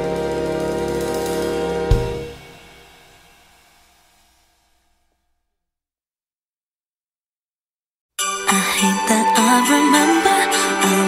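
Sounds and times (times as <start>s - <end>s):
final chord ringing out: 0.0s - 3.4s.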